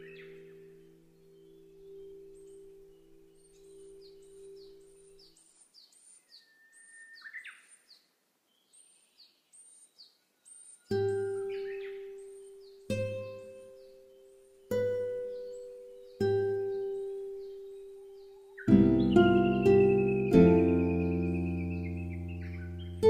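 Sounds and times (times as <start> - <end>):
birds chirping: 0.0 - 23.0
plucked guitar notes: 11.0 - 23.0
held musical chord: 12.9 - 23.0.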